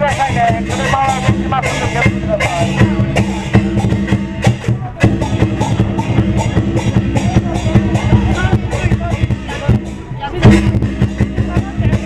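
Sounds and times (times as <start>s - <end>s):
big drum beating: 0.0s - 12.0s
crashing cymbals: 0.0s - 12.0s.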